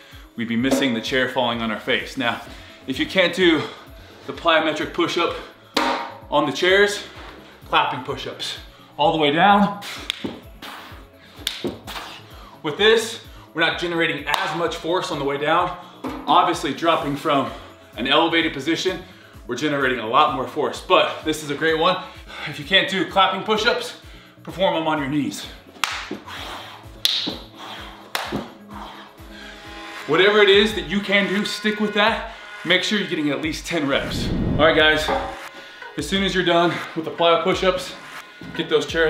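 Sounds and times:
background music with low beat: 0:00.0 - 0:39.0
sharp hand claps: 0:10.0 - 0:10.4, 0:11.4 - 0:11.9, 0:14.3 - 0:14.6, 0:25.8 - 0:26.2, 0:27.0 - 0:28.5.

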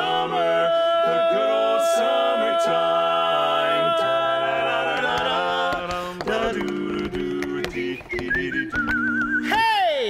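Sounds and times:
barbershop quartet singing: 0:00.0 - 0:09.5.

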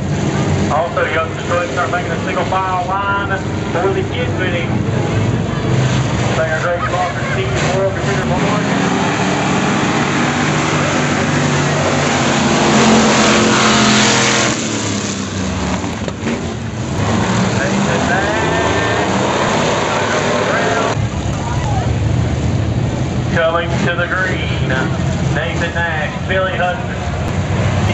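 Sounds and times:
stock car engines racing: 0:00.0 - 0:27.9.

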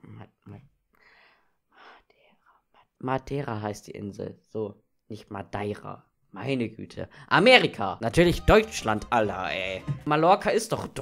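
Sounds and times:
man whispering: 0:01.8 - 0:03.2.

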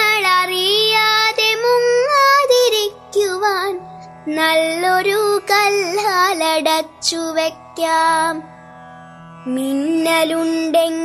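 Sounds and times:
person singing: 0:09.4 - 0:11.0.

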